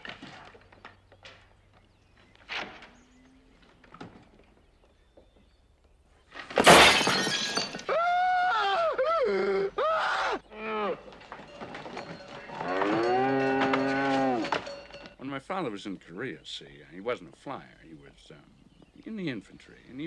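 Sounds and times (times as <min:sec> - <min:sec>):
loud crash of something breaking: 0:06.5 - 0:07.9
cow mooing: 0:12.6 - 0:14.5.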